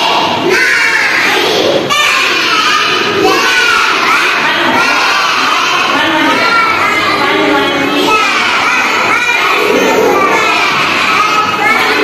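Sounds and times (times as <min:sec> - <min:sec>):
children calling out in chorus: 0:00.0 - 0:12.0.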